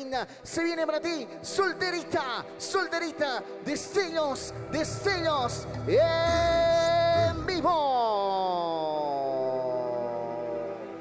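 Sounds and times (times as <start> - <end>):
synthesizer tone sliding down: 4.5 - 11.0.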